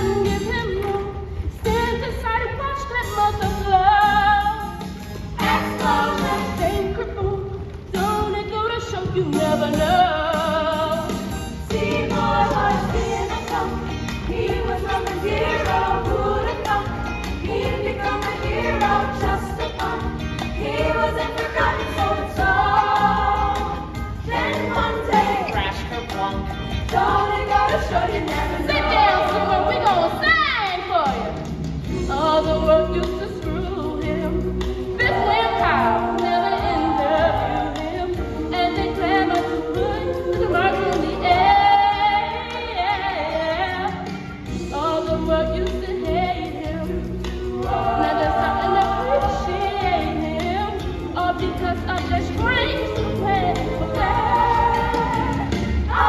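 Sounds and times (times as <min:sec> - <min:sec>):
young voices singing in chorus: 0:05.4 - 0:07.3, 0:11.7 - 0:30.3, 0:32.1 - 0:44.1, 0:44.7 - 0:56.0.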